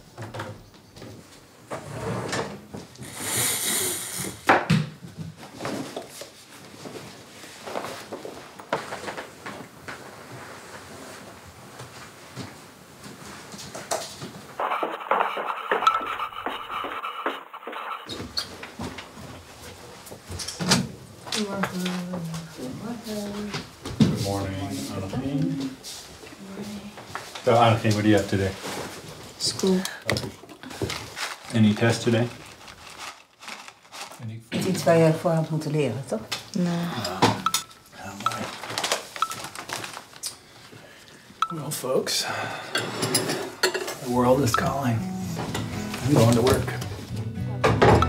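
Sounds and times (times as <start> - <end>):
hiss: 3.0 - 4.5
people talking: 21.4 - 23.6, 44.0 - 45.0, 46.0 - 46.8.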